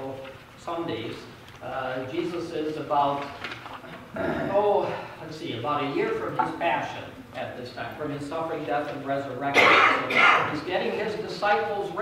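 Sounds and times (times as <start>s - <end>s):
person speaking: 0.0s - 12.0s
loud cough: 9.5s - 10.6s.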